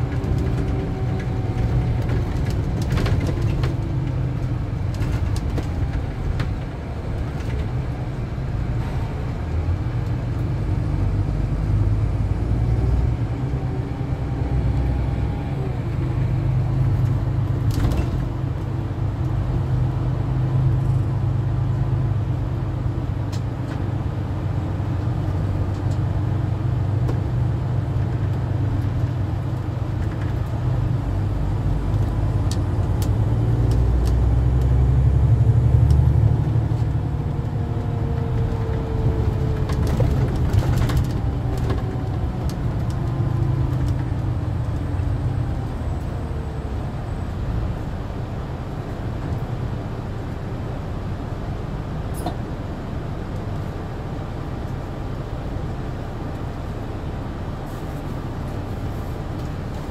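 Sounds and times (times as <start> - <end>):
engine and road rumble: 0.0 - 59.9.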